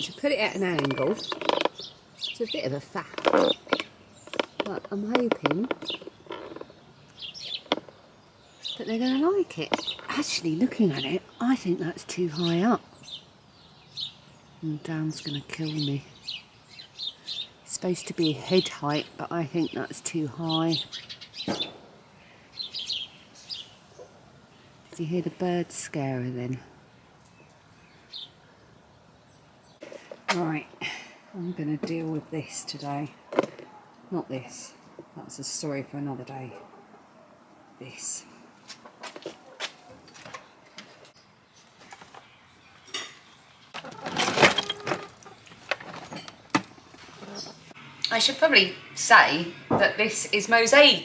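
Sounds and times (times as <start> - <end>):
birds chirping: 0.0 - 51.0
plastic boxes scraping and rattling: 0.6 - 1.9, 3.0 - 6.8, 43.8 - 47.6.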